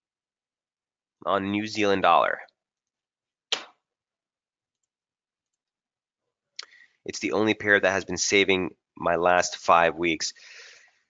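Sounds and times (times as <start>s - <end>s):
person speaking: 1.2s - 2.5s, 6.6s - 10.7s.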